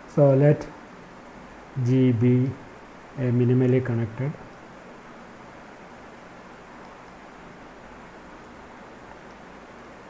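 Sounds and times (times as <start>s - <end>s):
microphone hiss: 0.0s - 10.0s.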